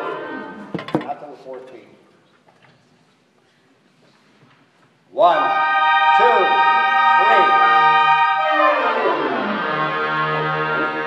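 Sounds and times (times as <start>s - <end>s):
woodwind figures: 0.0s - 0.7s, 5.2s - 11.0s
concert band playing: 5.3s - 11.0s.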